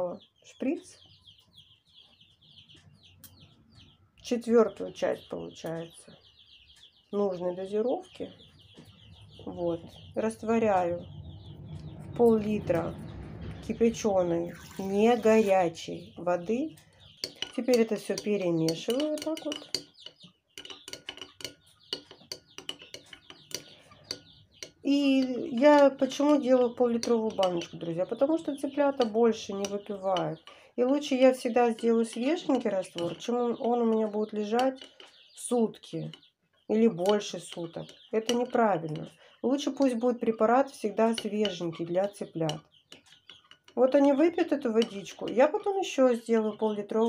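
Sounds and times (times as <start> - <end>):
chicks peeping: 0.0 - 47.0
spoon clinking in glass jar: 17.2 - 25.8.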